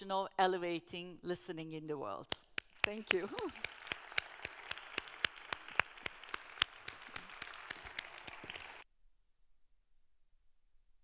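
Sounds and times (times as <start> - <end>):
individual hand claps: 2.3 - 8.8
audience applause: 2.6 - 8.8.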